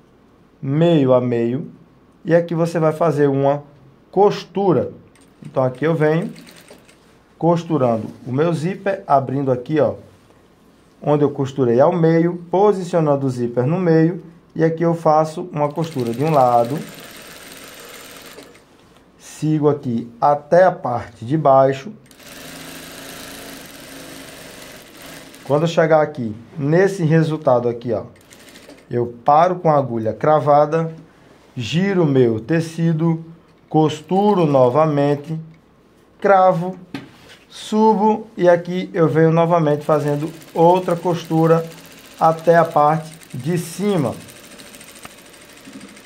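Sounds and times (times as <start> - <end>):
sewing machine stitching: 5.2 - 7.0, 15.6 - 18.7, 22.0 - 25.7, 28.2 - 28.9, 39.7 - 46.0.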